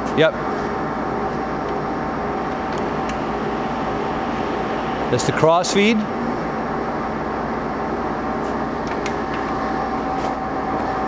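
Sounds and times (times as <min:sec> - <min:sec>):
lathe gear hum and whine: 0:00.0 - 0:11.0.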